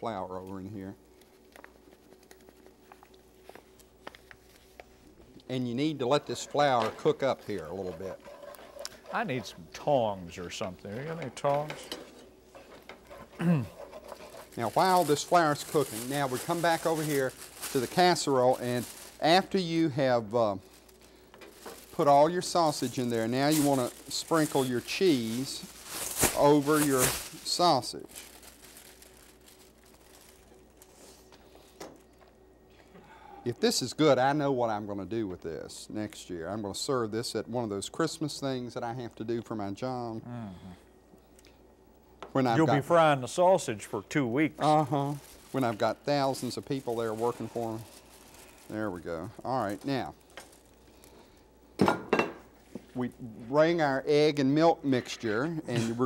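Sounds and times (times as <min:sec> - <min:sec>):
low steady hum: 0:00.0 - 0:56.0
cheddar rustling into foil pan: 0:05.8 - 0:32.2, 0:44.6 - 0:51.4
grease crackling in a skillet: 0:12.5 - 0:21.0, 0:21.6 - 0:30.8.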